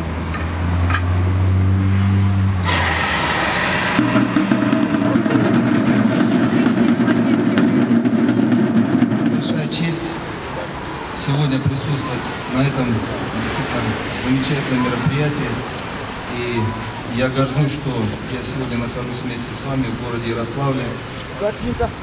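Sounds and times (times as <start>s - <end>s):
confetti cannon hissing blast: 2.6s - 5.8s
dense continuous rumble: 2.7s - 22.0s.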